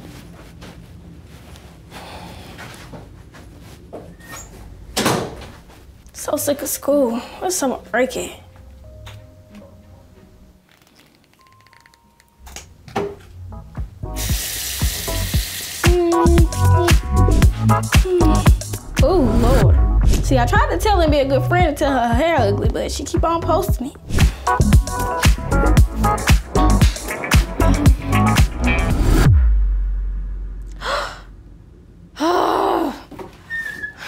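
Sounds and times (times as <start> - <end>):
background music with beat: 13.5 - 30.3
girl gasping: 17.9 - 19.3, 30.7 - 31.3, 32.2 - 33.1.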